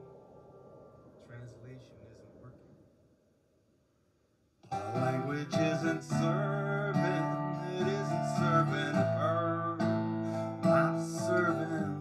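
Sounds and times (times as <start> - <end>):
acoustic guitar chords: 4.6 - 12.0.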